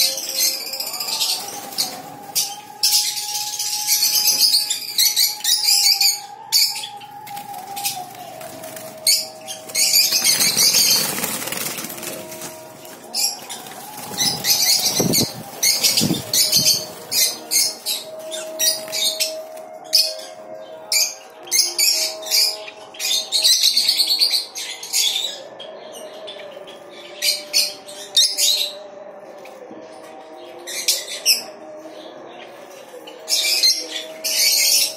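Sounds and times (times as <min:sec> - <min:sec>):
lovebirds chirping: 0:00.0 - 0:31.7.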